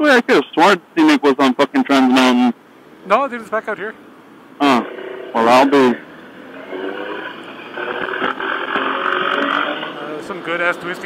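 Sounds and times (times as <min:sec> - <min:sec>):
motorcycle engine running: 0:04.7 - 0:09.8.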